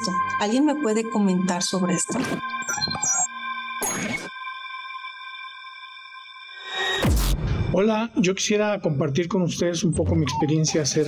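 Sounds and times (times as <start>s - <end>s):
held synthesized chord: 0.0s - 2.6s.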